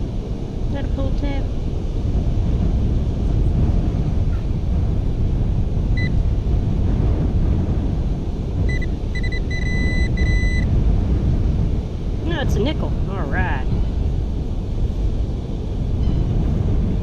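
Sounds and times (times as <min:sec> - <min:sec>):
wind rumble on microphone: 0:00.0 - 0:17.0
pinpointer beeping: 0:08.7 - 0:10.7.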